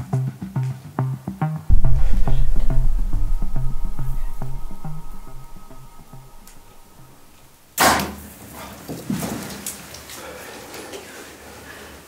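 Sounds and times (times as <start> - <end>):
bow shot crack: 1.7 - 7.5.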